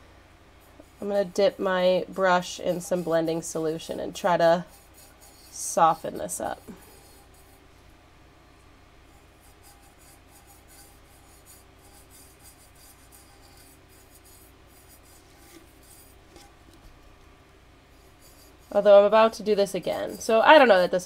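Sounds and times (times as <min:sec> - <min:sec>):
steady low hum: 0:00.0 - 0:21.0
paintbrush strokes: 0:00.6 - 0:07.7, 0:09.1 - 0:17.0, 0:17.9 - 0:21.0.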